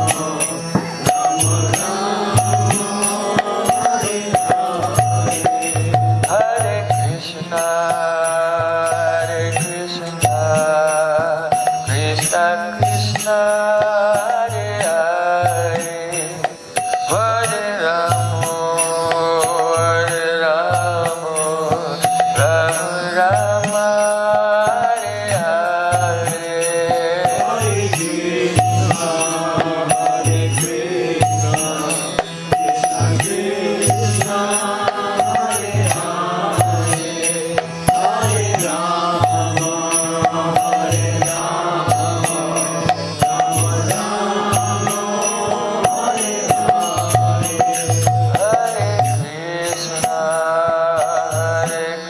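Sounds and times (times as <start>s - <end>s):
man chanting melodically: 0.0s - 52.0s
small cymbal strikes: 0.0s - 52.0s
steady percussion beat: 0.0s - 52.0s.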